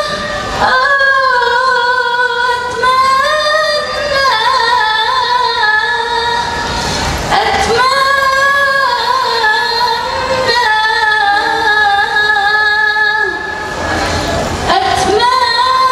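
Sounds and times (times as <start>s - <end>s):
woman singing into a microphone: 0.0s - 15.9s
rush of noise: 6.0s - 15.9s.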